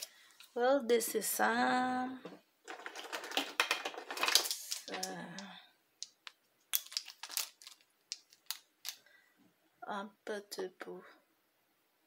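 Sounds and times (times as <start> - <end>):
clicks and rustles: 2.3 - 9.0.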